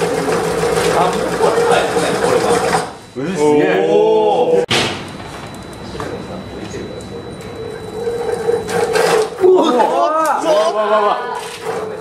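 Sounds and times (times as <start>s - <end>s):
shake table humming: 0.0s - 3.0s, 5.0s - 12.0s
people exclaiming loudly: 9.4s - 11.5s.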